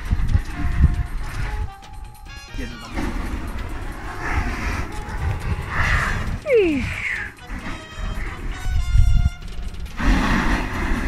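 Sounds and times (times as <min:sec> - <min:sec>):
flamethrower flame rumbling: 0:00.0 - 0:11.0
steady rushing noise: 0:00.0 - 0:11.0.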